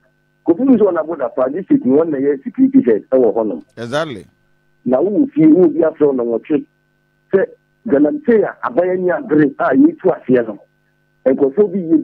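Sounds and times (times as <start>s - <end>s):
person talking: 3.6s - 4.3s.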